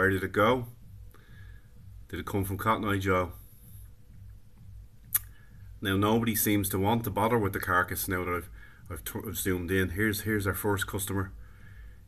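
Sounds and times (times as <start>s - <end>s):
sharp click: 5.1s - 5.4s
man's voice: 5.8s - 11.4s.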